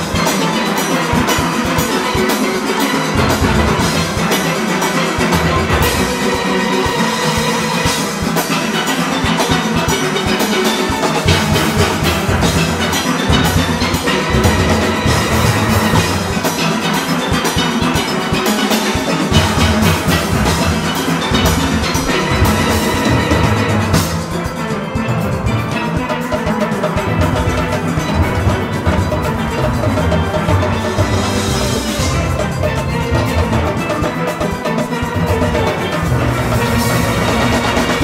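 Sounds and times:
drums keeping the beat: 0.0s - 38.0s
steelpans playing fast: 0.0s - 38.0s.

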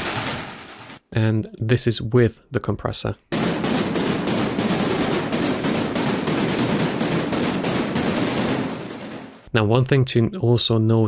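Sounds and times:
rapid noisy synthesized percussion hits: 0.0s - 1.0s, 3.3s - 9.5s.

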